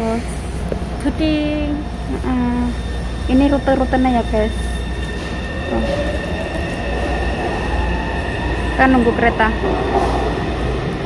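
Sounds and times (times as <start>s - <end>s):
thin high whine: 0.0s - 9.4s
low rumble of metro platform: 0.0s - 11.0s.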